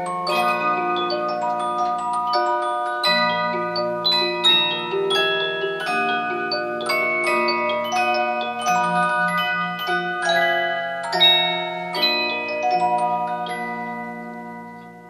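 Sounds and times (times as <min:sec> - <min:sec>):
disc musical box playing a tune: 0:00.0 - 0:15.0.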